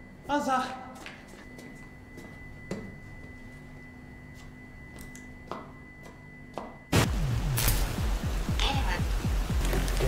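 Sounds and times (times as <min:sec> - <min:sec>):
low hum: 0:01.4 - 0:10.0.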